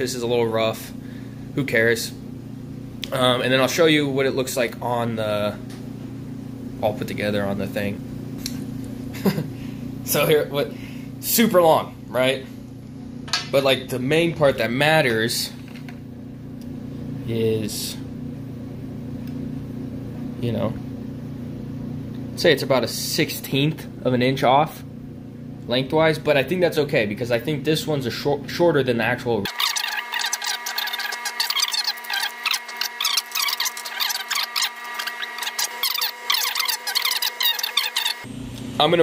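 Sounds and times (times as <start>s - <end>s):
low machine hum: 0.0s - 39.0s
steady hum: 29.2s - 39.0s
sped-up squeaky chatter: 29.5s - 38.3s.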